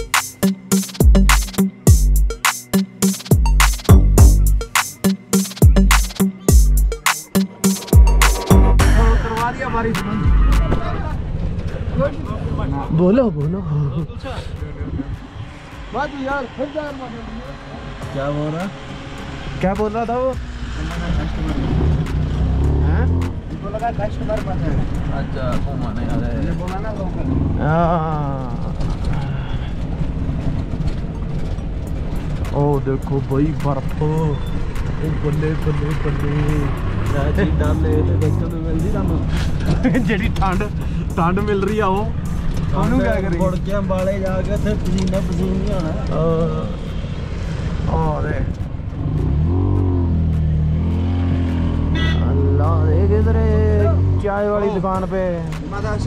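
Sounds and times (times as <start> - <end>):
van passing: 0.0 - 56.0
auto-rickshaw engine running: 10.8 - 13.4, 14.0 - 56.0.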